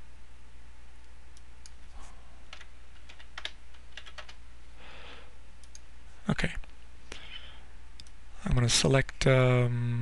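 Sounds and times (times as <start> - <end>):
low electrical hum: 0.0 - 10.0
computer keyboard keys struck: 2.5 - 4.4.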